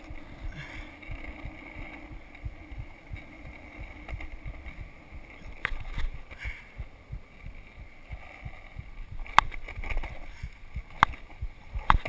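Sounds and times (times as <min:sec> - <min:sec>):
skateboard wheels rumbling on asphalt: 0:00.0 - 0:12.0.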